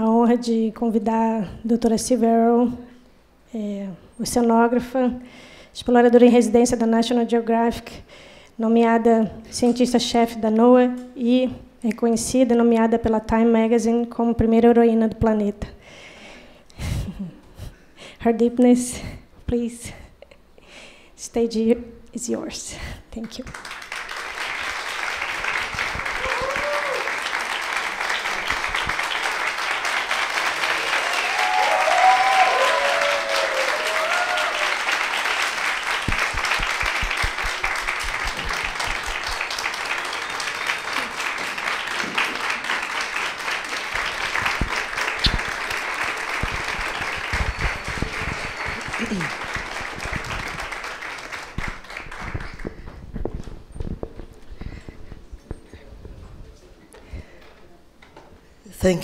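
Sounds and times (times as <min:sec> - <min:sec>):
audience applauding: 0:23.4 - 0:53.0
whoops: 0:26.0 - 0:27.4, 0:30.9 - 0:35.0.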